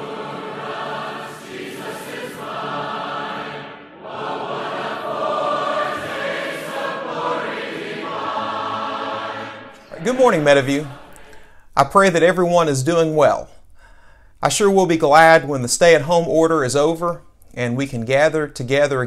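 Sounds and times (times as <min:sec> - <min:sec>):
choir singing held chords: 0:00.0 - 0:12.6.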